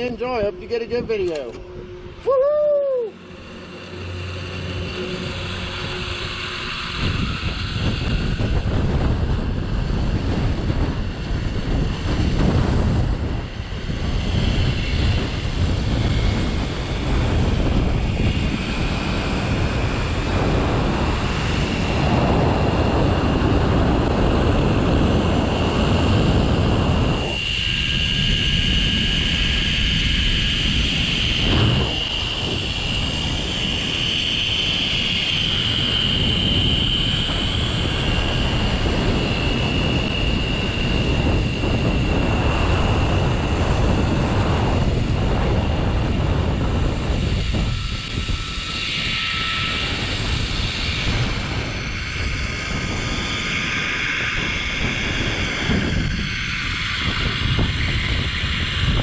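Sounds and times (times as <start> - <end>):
high whine of pulleys on cable: 0.0 - 59.0
wind rushing over microphone: 0.0 - 59.0.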